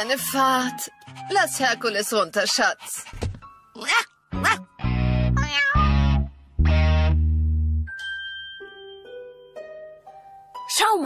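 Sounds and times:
light background music: 0.0s - 6.0s, 7.9s - 11.0s
cartoon cat meowing and yowling: 5.4s - 6.1s.

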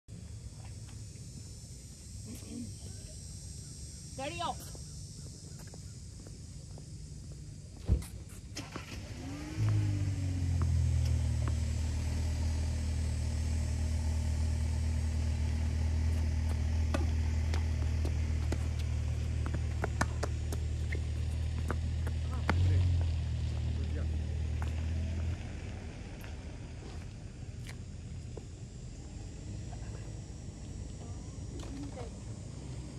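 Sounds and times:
low engine hum: 0.1s - 32.9s.

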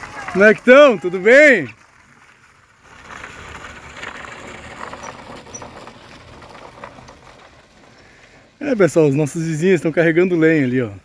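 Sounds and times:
tires crunching on dirt: 0.0s - 11.0s
vehicle rumbling on dirt track: 0.0s - 11.0s.

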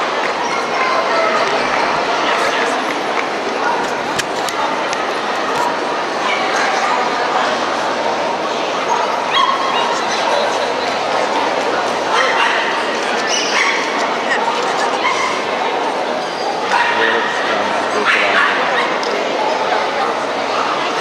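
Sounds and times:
murmur of crowd voices: 0.0s - 21.0s
dogs barking and yipping: 8.8s - 10.6s, 12.1s - 15.6s, 16.6s - 17.4s.

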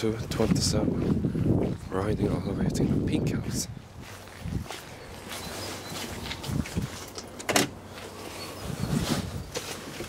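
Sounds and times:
footsteps on paving: 0.0s - 7.3s.

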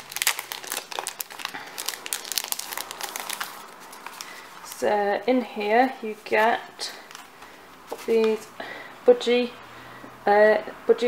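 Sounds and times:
plastic packet crinkling: 0.0s - 4.9s, 6.1s - 8.5s.

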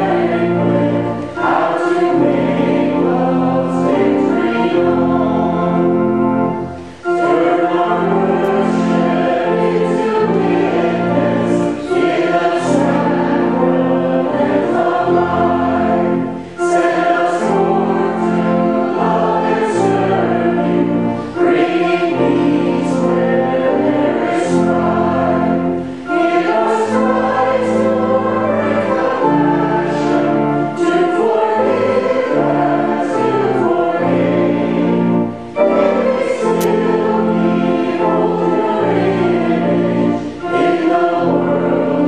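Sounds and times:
congregation singing a hymn: 0.0s - 42.0s.

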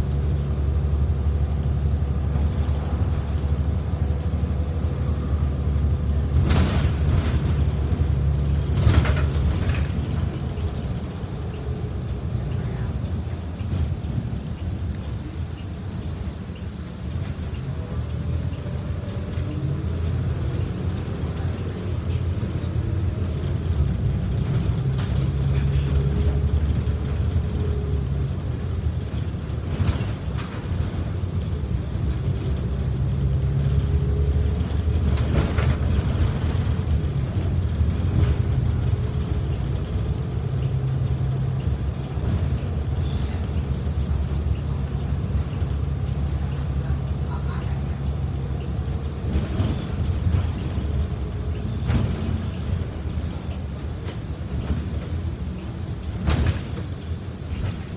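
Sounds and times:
bus engine and road rumble: 0.0s - 57.9s.

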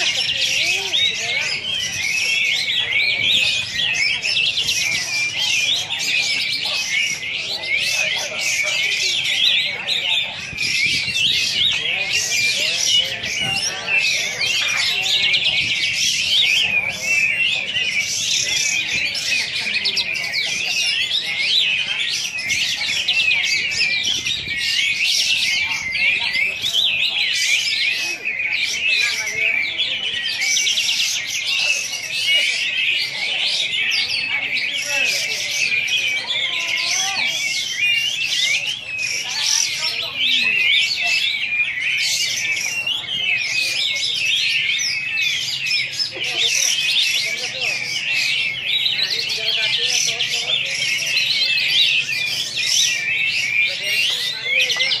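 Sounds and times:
bulbul singing rapid chirps and trills: 0.0s - 55.0s.

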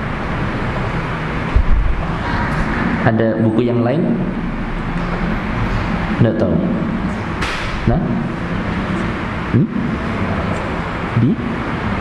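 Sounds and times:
low hum: 0.0s - 12.0s
steady rushing noise: 0.0s - 12.0s.

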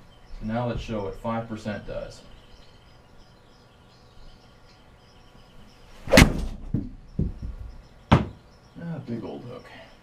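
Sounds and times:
golf club striking ball: 6.1s - 6.7s
small knock: 6.3s - 8.4s.

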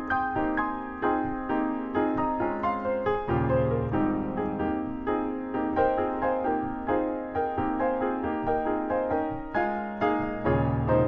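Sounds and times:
solo jazz piano: 0.0s - 11.0s.

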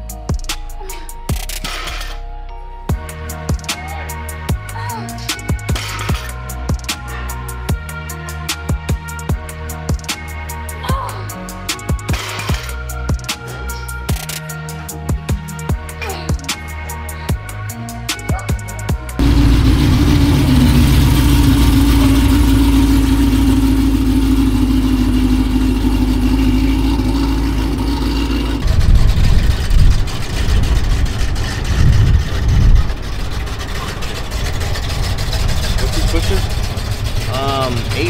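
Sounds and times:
car engine revving: 19.2s - 38.0s.

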